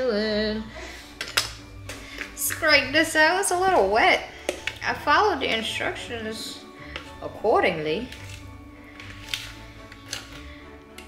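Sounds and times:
quiet background music: 0:00.0 - 0:11.0
spoon scraping plastic bowl: 0:06.9 - 0:11.0.

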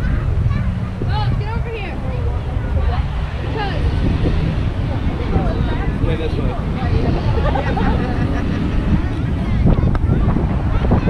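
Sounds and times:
road traffic: 0:00.0 - 0:11.0
voices talking: 0:00.0 - 0:11.0
wind buffeting microphone: 0:00.0 - 0:11.0.

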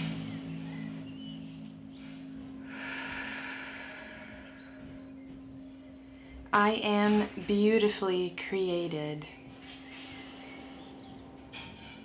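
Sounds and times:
soft music with low drone: 0:00.0 - 0:12.0
slow audible breath: 0:02.0 - 0:05.4.

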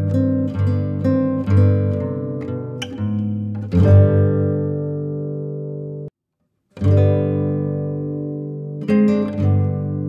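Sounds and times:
guitar chords ringing: 0:00.0 - 0:06.1, 0:06.8 - 0:10.0.

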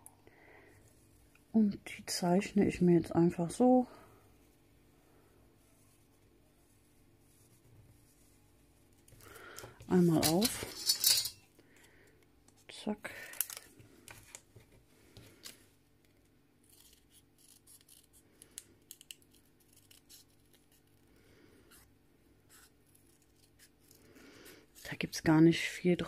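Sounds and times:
scissors snipping paper: 0:16.6 - 0:20.8.

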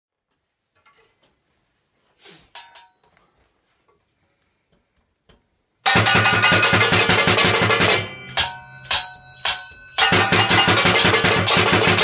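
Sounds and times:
drumsticks on metal kitchen items: 0:02.5 - 0:03.0, 0:05.8 - 0:12.0
metallic ringing hits: 0:05.9 - 0:12.0.

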